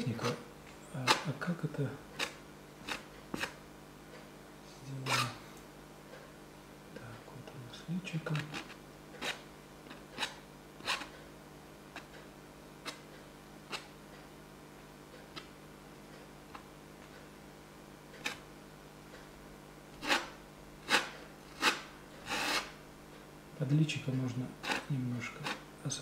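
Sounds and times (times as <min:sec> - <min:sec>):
palette knife scraping canvas: 0:02.2 - 0:03.6, 0:05.0 - 0:05.4, 0:08.4 - 0:11.1, 0:20.0 - 0:22.8.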